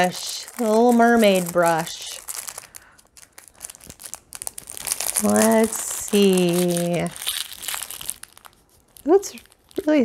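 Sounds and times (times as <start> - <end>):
plastic wrapping crinkling: 0.0 - 10.0.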